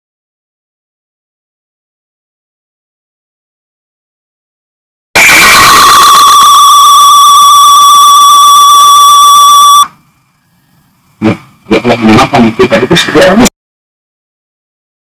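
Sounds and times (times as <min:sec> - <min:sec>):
loud high electronic tone: 0:05.2 - 0:09.9.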